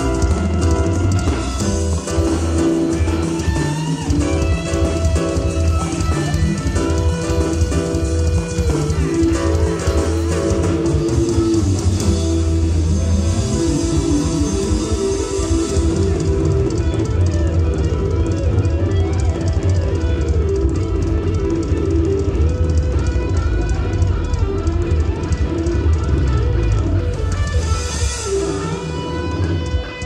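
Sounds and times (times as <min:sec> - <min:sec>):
bass: 0:00.0 - 0:30.0
drum kit: 0:00.0 - 0:30.0
electric guitar: 0:00.0 - 0:30.0.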